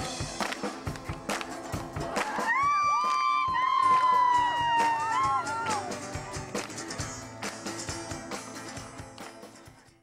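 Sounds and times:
crowd clapping along: 0.0 - 9.8
live band music: 0.0 - 10.0.

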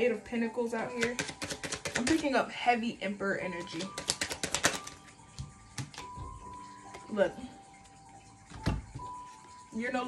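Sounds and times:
cards being shuffled: 1.0 - 2.3, 3.7 - 6.1.

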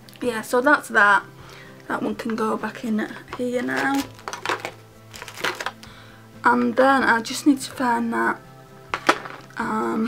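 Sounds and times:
makeup products clicking and knocking: 3.1 - 5.9, 8.9 - 9.5.

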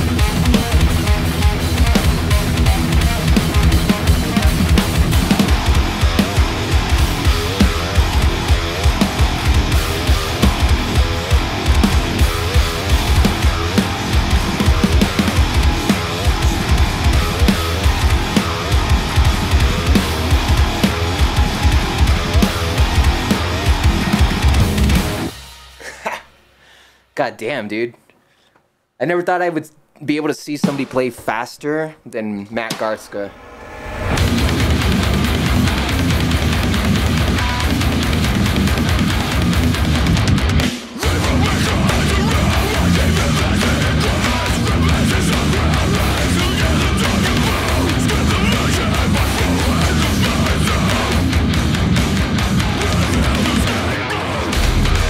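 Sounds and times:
heavy metal electric guitar: 0.0 - 26.1, 32.7 - 55.0
backing track with drums: 0.0 - 26.6, 30.6 - 31.6, 32.6 - 55.0.

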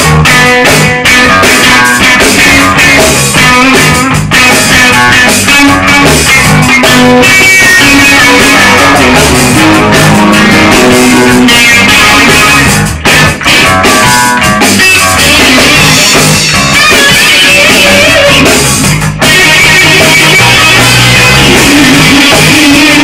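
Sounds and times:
electric guitar playing rock: 0.0 - 23.0.

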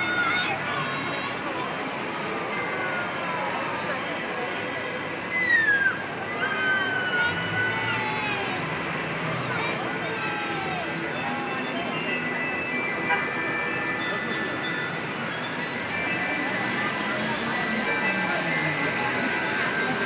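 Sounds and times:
crowd chatter: 0.0 - 20.0
passing traffic: 0.0 - 20.0
loud falling squeal: 5.0 - 20.0.

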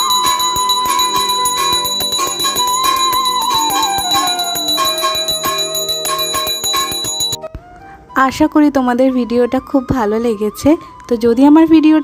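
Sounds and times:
hand bell rung rapidly: 0.0 - 7.4.

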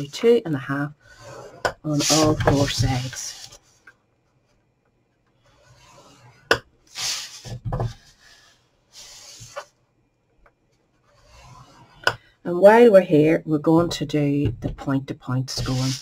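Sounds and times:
stylus scraping cardstock: 1.1 - 3.6, 15.5 - 16.0.

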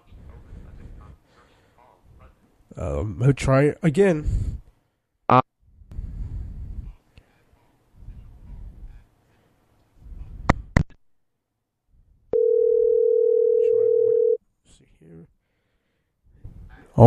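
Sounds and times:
steady telephone tone: 12.4 - 14.4.

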